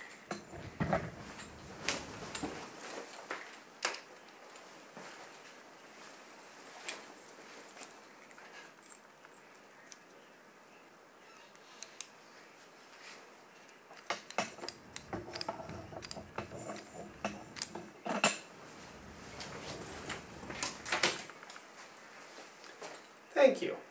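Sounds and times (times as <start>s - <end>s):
metal pole clicks and rattling: 14.0s - 21.3s.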